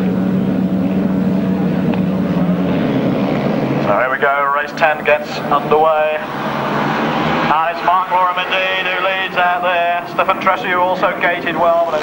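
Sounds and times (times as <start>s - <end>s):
motorcycle engines at full throttle: 0.0s - 12.0s.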